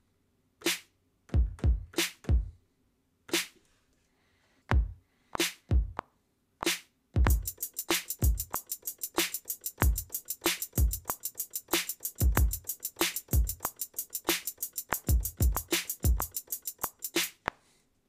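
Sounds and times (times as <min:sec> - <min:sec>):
snare drum: 0:00.6 - 0:02.5, 0:03.3 - 0:03.6, 0:04.8 - 0:06.0, 0:06.6 - 0:17.5
kick drum: 0:01.3 - 0:02.6, 0:04.7 - 0:05.0, 0:05.7 - 0:06.0, 0:07.2 - 0:07.6, 0:08.2 - 0:08.5, 0:09.8 - 0:10.1, 0:10.8 - 0:11.1, 0:12.2 - 0:12.7, 0:13.4 - 0:13.7, 0:15.1 - 0:16.3
fast hi-hats: 0:06.6 - 0:17.5.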